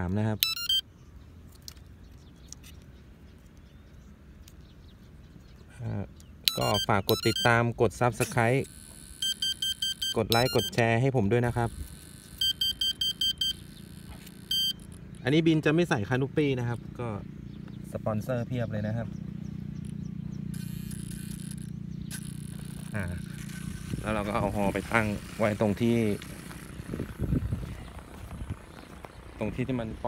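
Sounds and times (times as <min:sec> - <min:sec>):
high-pitched electronic beeps: 0:00.4 - 0:00.8, 0:06.5 - 0:15.3, 0:19.8 - 0:24.8
high quick beeping notes: 0:06.5 - 0:07.6, 0:08.6 - 0:10.9, 0:11.8 - 0:15.0.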